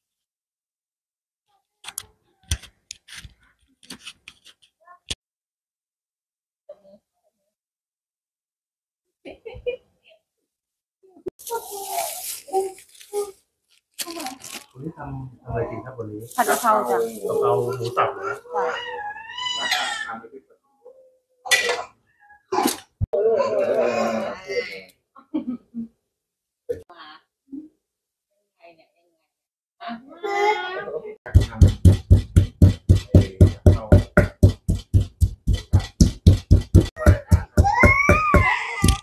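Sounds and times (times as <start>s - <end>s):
baby crying: 18.2s - 20.2s, 37.0s - 39.0s
baby fussing: 37.0s - 39.0s.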